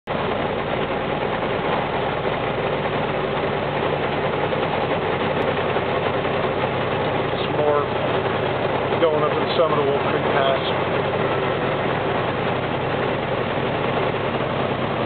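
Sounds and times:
engine and tyre noise in cabin: 0.1s - 15.0s.

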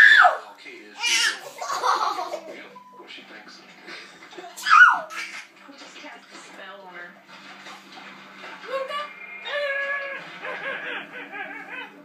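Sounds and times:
baby squealing and babbling: 4.6s - 5.4s.

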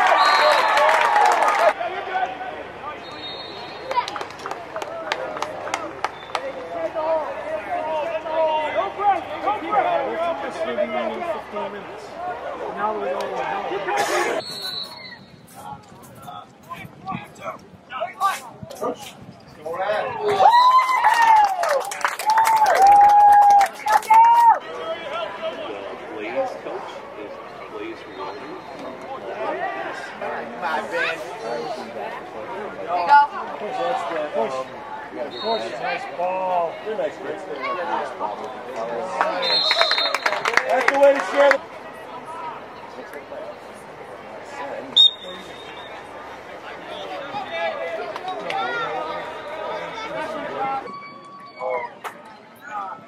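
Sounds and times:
players and spectators calling out: 0.0s - 21.6s, 22.2s - 53.0s
referee's whistle blast: 0.1s - 0.8s, 3.0s - 3.9s, 14.4s - 15.4s, 39.4s - 40.4s, 45.0s - 46.1s
people talking indistinctly: 2.1s - 20.4s.

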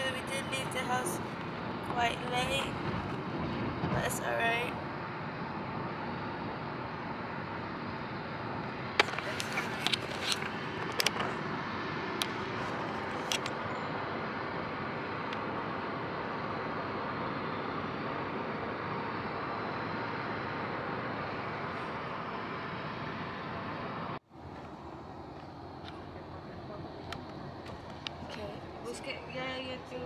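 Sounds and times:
car cabin road noise: 0.0s - 30.0s
rushing vehicle travel noise: 0.0s - 30.0s.

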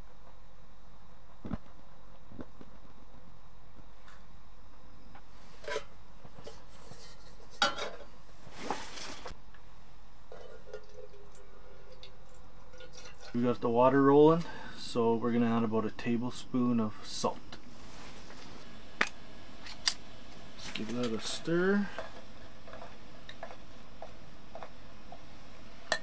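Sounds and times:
water pouring into kettle: 10.3s - 13.6s.

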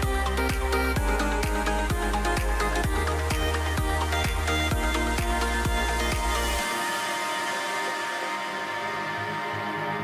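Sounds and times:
electronic background music: 0.0s - 10.0s.

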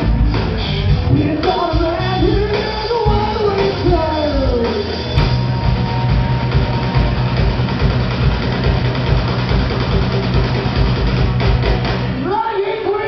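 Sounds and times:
heavy bass line: 0.0s - 12.5s
rock band playing: 0.0s - 13.0s.

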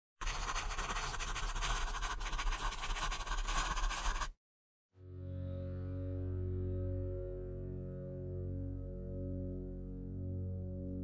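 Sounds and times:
crayon scribbling on paper: 0.2s - 4.4s.

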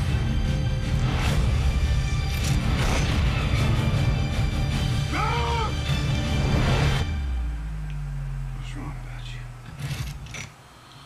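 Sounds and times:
low steady drone: 5.9s - 10.5s.

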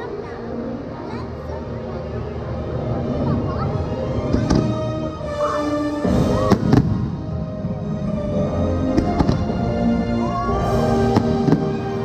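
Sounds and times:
fireworks bangs: 6.1s - 7.3s, 8.9s - 9.6s, 10.8s - 12.0s.

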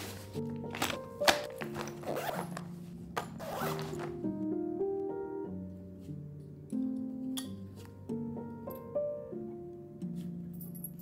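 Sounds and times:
zipper rasping: 0.0s - 4.2s
background music with held notes: 0.0s - 11.0s.

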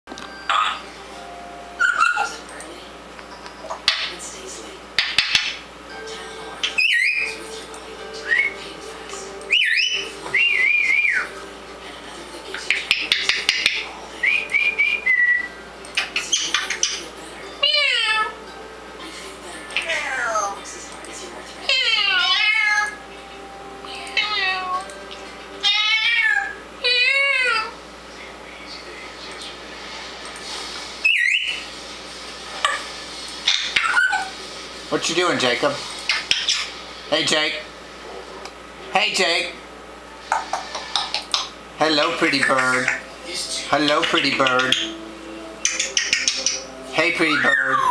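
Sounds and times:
parrot whistling and chattering: 1.8s - 2.4s, 6.6s - 7.4s, 9.5s - 11.4s, 12.7s - 17.0s, 31.0s - 31.7s, 33.4s - 34.3s, 45.6s - 47.9s.

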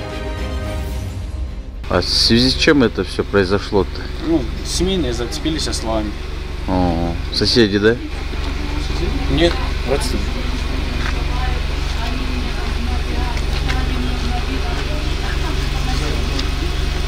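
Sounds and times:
car engine idling: 1.8s - 17.0s
faint indistinct voices: 3.0s - 17.0s.

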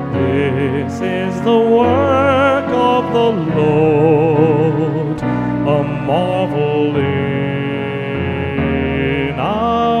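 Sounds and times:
sustained accompaniment chords: 0.0s - 10.0s.

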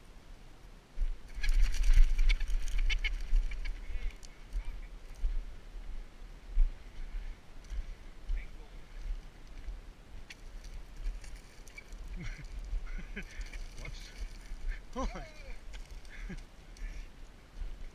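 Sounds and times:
pheasant squawking: 1.3s - 4.8s.

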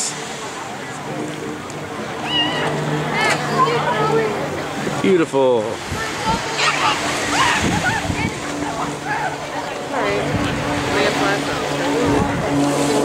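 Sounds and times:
crowd chatter: 0.0s - 13.0s
surf: 0.0s - 13.0s.

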